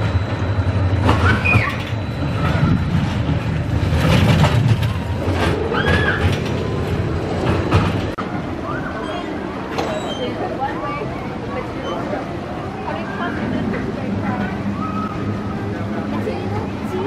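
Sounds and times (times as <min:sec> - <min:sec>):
roller coaster rumbling on track: 0:00.0 - 0:17.0.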